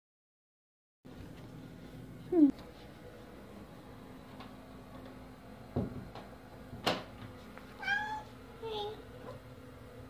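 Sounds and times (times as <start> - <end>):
cat meowing: 7.8 - 8.3.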